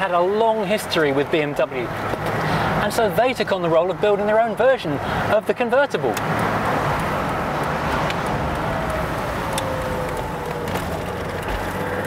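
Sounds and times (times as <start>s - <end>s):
wind and road noise: 0.0s - 12.0s
car engine cruising: 0.4s - 12.0s.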